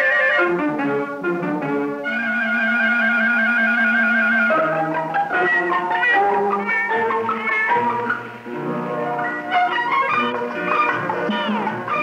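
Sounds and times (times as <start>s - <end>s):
film song melody: 0.0s - 12.0s.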